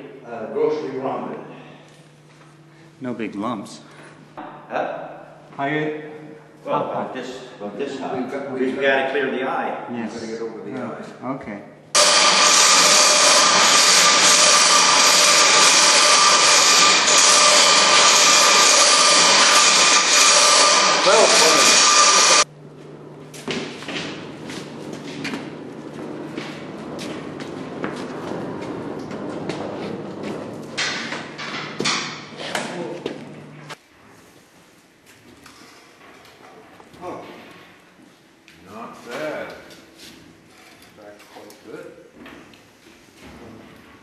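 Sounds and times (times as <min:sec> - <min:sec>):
low machine hum: 0:00.0 - 0:34.1
machinery rushing with whistling: 0:12.0 - 0:22.4
knocks and clanks: 0:25.0 - 0:32.3.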